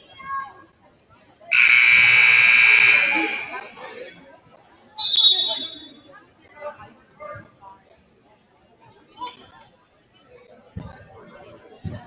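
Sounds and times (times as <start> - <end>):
scoreboard horn blast: 1.5 - 3.8.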